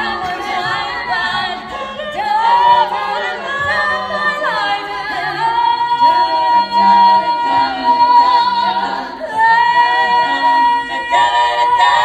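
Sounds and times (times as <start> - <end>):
women singing a cappella harmony: 0.0 - 12.0.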